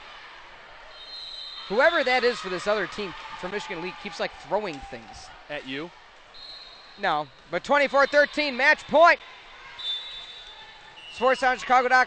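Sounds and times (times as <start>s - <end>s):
gym hall ambience: 0.0s - 12.0s.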